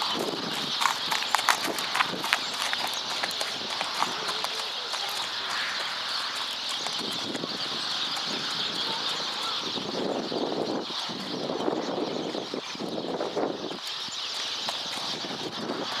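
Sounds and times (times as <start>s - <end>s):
small birds chirping: 0.0s - 16.0s.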